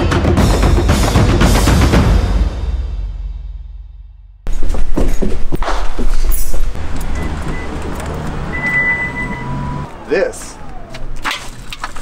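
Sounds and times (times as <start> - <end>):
background music: 0.0 - 3.9.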